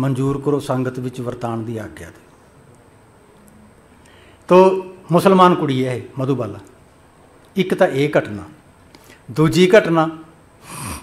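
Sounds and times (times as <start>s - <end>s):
man speaking into a microphone: 0.0s - 2.2s, 4.5s - 6.7s, 7.6s - 8.6s, 9.3s - 10.3s.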